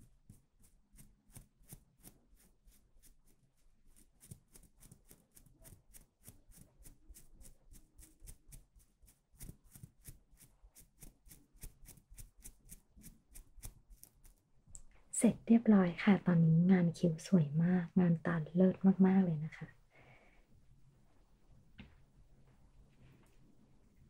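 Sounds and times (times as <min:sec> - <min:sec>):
pencil scratching strokes: 0:00.0 - 0:14.5.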